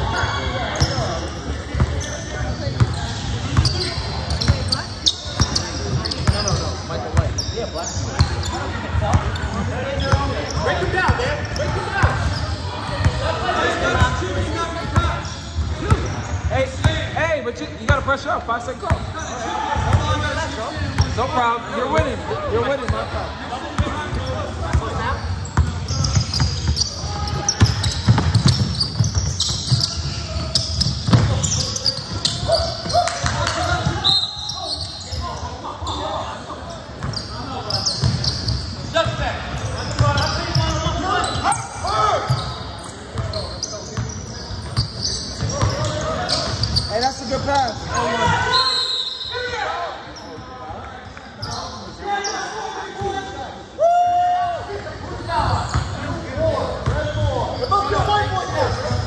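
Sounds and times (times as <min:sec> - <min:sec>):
players calling out: 0:18.7 - 0:50.5.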